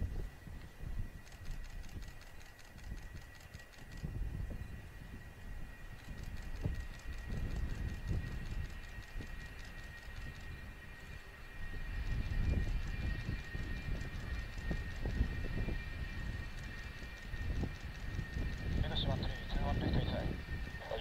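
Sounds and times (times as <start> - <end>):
jet engine whine: 0.0 - 21.0
wind buffeting microphone: 0.0 - 21.0.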